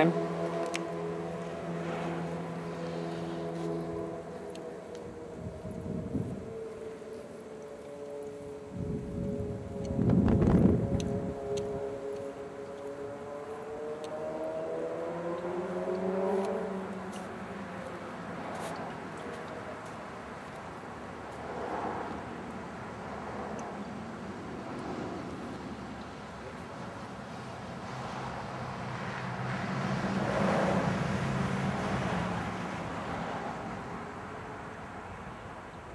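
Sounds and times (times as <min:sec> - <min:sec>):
road noise rushing: 0:00.0 - 0:35.9
vehicle engine hum: 0:00.0 - 0:35.9.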